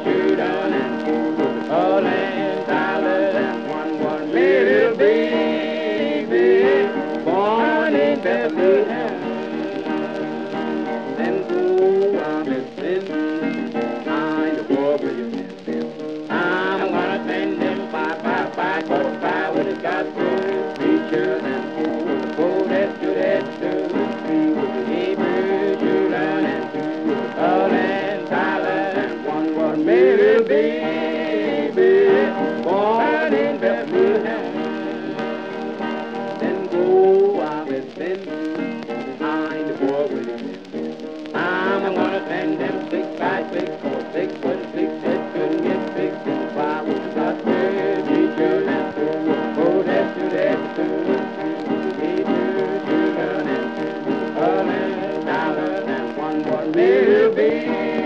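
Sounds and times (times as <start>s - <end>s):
gospel guitar playing: 0.0s - 58.0s.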